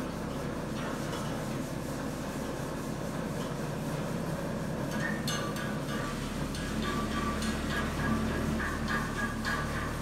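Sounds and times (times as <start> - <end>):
hydraulic lift power unit humming: 2.9 - 10.0.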